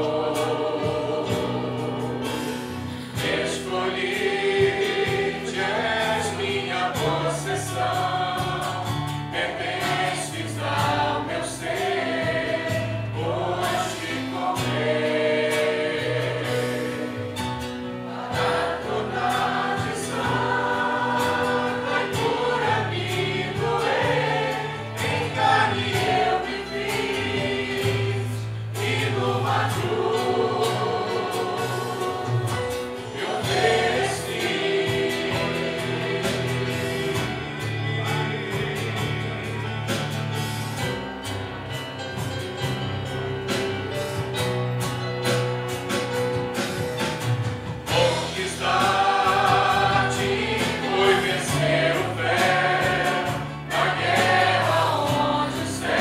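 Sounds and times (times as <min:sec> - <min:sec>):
choir singing gospel music: 0:00.0 - 0:56.0.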